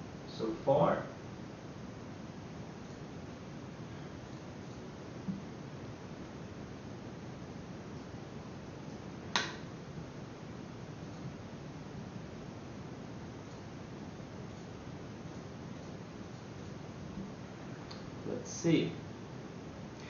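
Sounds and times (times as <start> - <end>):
faint room and microphone hiss: 0.0 - 20.0
sharp click: 9.3 - 9.7.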